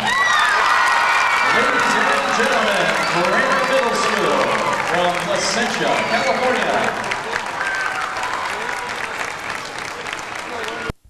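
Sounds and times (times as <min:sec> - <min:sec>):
audience applause: 0:00.0 - 0:10.9
voices: 0:01.4 - 0:10.9.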